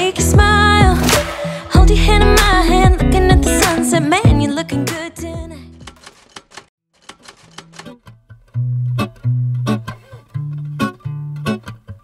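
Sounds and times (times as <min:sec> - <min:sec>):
typewriter key clicks: 0:05.8 - 0:08.0.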